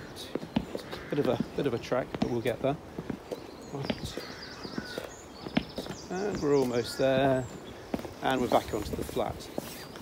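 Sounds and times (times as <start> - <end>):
footsteps on outdoor steps: 0.0 - 10.0
small birds chirping: 0.0 - 10.0.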